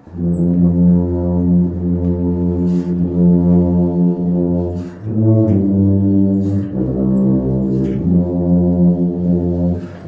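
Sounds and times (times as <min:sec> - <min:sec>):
brass ensemble playing a hymn: 0:00.0 - 0:10.0.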